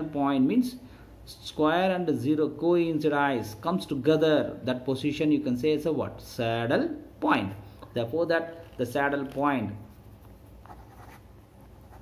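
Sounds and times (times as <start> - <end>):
marker pen scratching on paper: 8.5 - 12.0.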